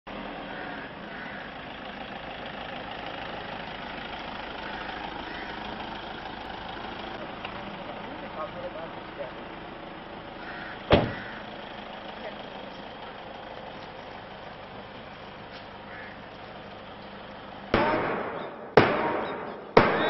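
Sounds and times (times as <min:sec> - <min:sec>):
outdoor background noise: 0:00.1 - 0:20.0
car door shutting: 0:10.9 - 0:11.3.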